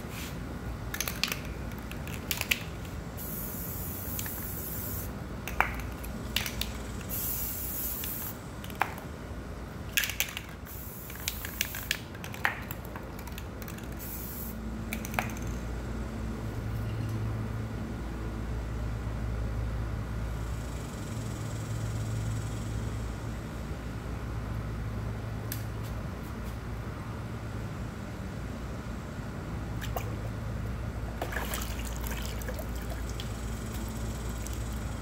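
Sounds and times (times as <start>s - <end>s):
low mechanical hum: 0.0s - 35.0s
spray can hissing: 3.2s - 5.1s, 7.0s - 8.4s, 10.7s - 12.0s, 13.8s - 14.6s.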